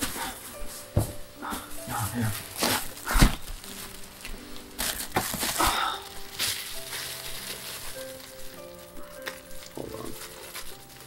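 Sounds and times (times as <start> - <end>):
soft sustained music: 0.0 - 11.0
bread crust crackling as torn: 2.4 - 11.0.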